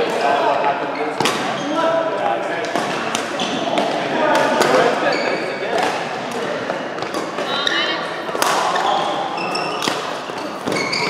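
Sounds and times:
voices talking in echoing hall: 0.0s - 11.0s.

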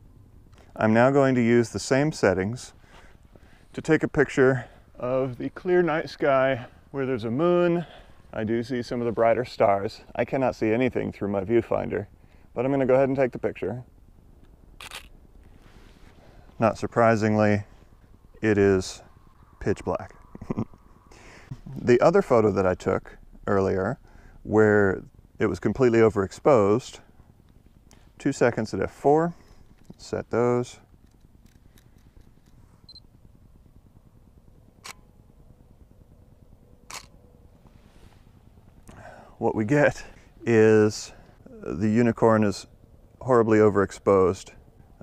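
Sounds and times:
camera shutter click: 14.8s - 15.1s, 36.9s - 37.1s.

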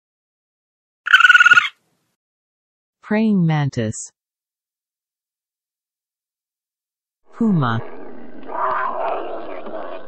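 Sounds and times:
possum chattering trill: 1.1s - 1.7s.

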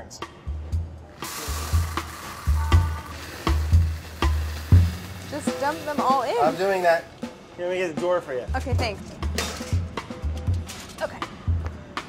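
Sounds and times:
background music with drum beat: 0.0s - 12.0s
metal ball bearings pouring onto foil: 1.2s - 7.1s.

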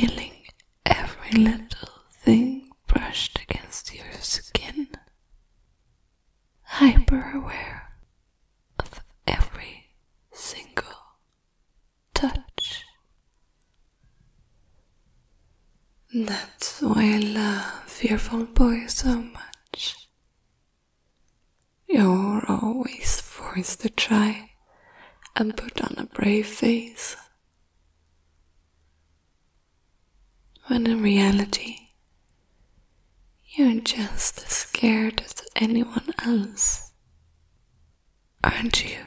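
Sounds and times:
woman whispering: 0.0s - 5.1s, 6.6s - 8.0s, 8.8s - 11.3s, 12.1s - 13.0s, 16.1s - 20.1s, 21.9s - 24.6s, 25.2s - 27.4s, 30.6s - 32.0s, 33.4s - 37.0s, 38.4s - 39.0s.

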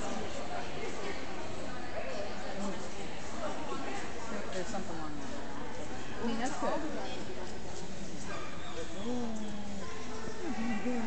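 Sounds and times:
indistinct voices: 8.9s - 11.0s.

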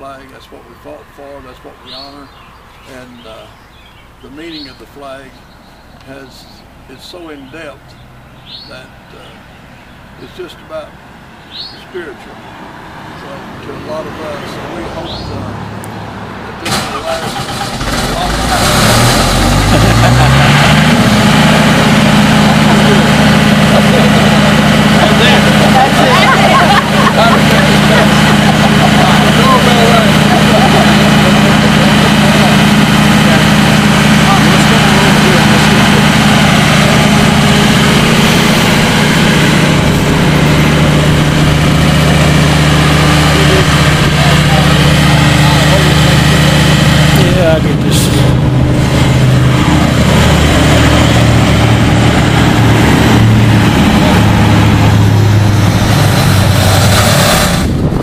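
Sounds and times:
engine idling: 16.5s - 58.0s
faint voices murmuring: 21.2s - 55.2s.

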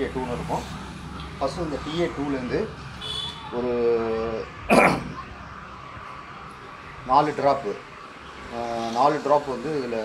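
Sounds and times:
man clearing throat: 4.7s - 5.2s.

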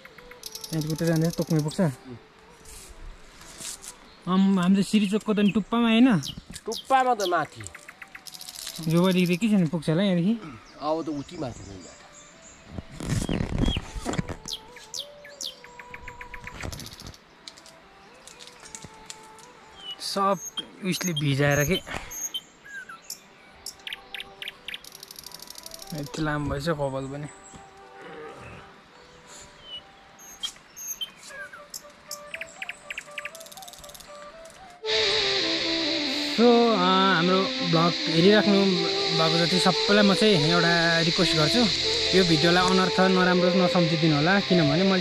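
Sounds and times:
birds whistling: 0.0s - 1.8s, 4.9s - 9.5s, 10.5s - 17.2s, 19.7s - 26.5s, 28.4s - 45.0s
faint background music: 0.0s - 45.0s.

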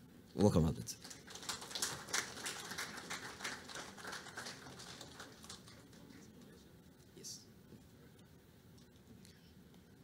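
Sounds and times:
audience applauding: 1.0s - 6.4s.

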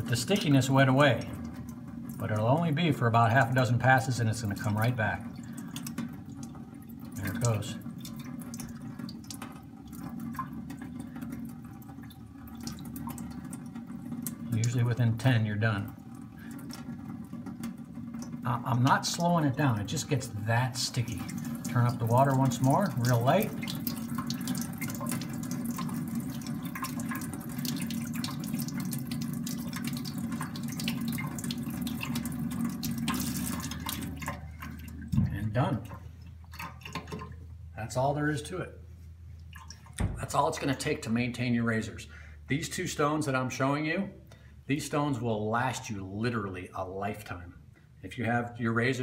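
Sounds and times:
tap water running onto stone: 0.0s - 37.4s.

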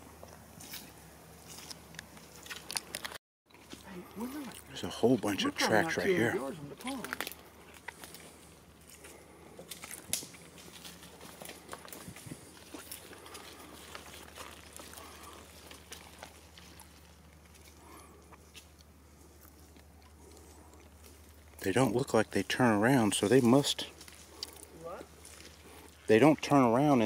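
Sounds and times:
footsteps on leaf litter: 0.4s - 26.8s
twig snapping: 9.7s - 10.4s.

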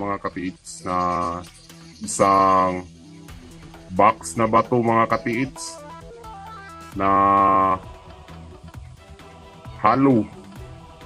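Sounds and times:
plucked background music: 0.0s - 11.0s
person drawing out a syllable: 7.0s - 7.8s.

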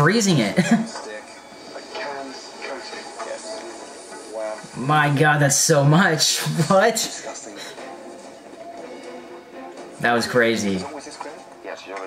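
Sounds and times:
television speech in background: 0.0s - 9.2s, 9.9s - 12.0s.

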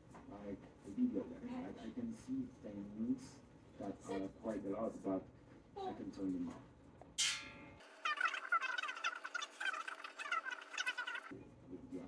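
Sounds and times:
short chirping animal calls: 7.9s - 11.3s.

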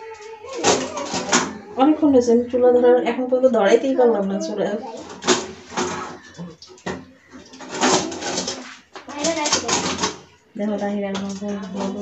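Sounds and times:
woman speaking: 1.3s - 5.0s, 10.6s - 12.0s.

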